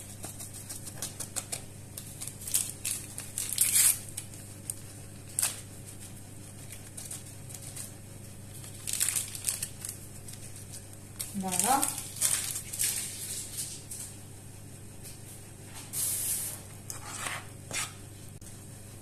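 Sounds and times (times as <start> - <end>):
paper crinkling and tearing: 0.0 - 14.1.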